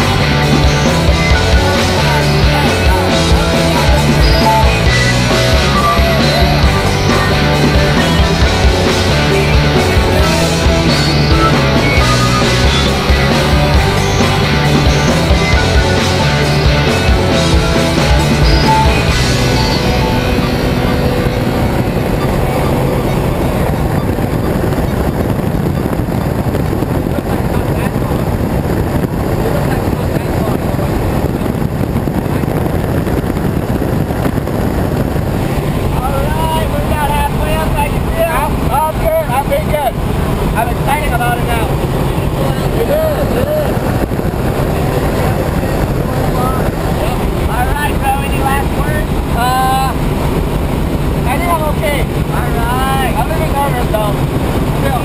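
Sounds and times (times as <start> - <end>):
loud airflow noise: 0.0 - 55.0
propeller plane engine droning: 0.0 - 55.0.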